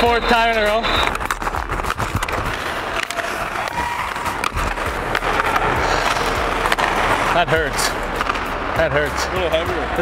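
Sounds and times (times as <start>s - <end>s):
hockey stick tapping puck and ice: 0.4s - 8.8s
skate blades scraping on ice: 0.6s - 8.7s.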